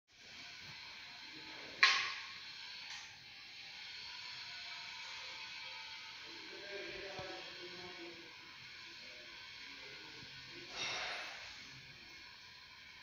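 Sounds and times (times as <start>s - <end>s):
steady hiss: 0.2s - 13.0s.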